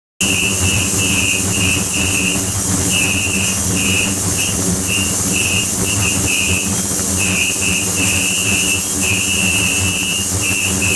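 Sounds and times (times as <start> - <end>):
cavitation hiss: 0.2 - 10.9
high whistling tone: 0.2 - 10.9.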